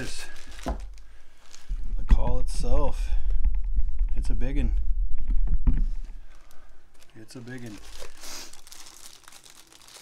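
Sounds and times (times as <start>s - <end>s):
plastic bag crinkling: 0.0s - 1.8s, 6.2s - 10.0s.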